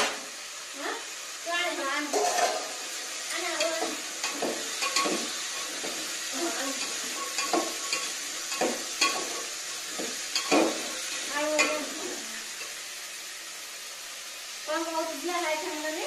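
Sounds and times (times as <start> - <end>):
steady hiss: 0.0 - 16.0.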